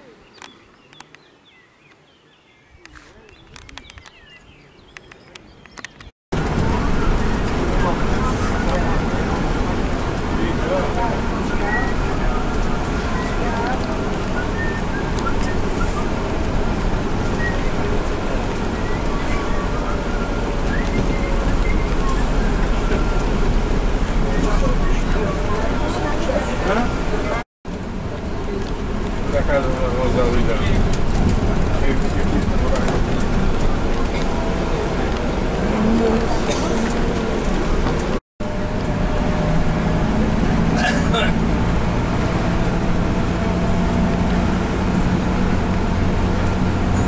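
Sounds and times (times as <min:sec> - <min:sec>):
bus engine and road rumble: 0:02.7 - 0:47.0
indistinct passenger voices: 0:06.4 - 0:47.0.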